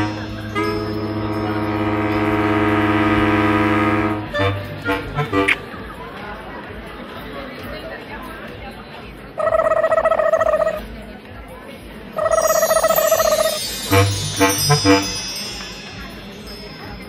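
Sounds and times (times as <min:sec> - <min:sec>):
murmuring crowd: 0:00.0 - 0:17.0
electronic telephone ringing: 0:12.2 - 0:14.0.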